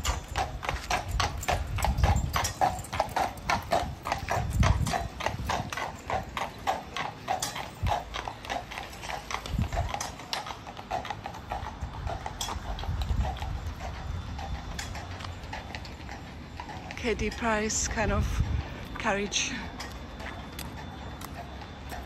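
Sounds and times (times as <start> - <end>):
horse hooves clip-clopping on asphalt: 0.0 - 22.0.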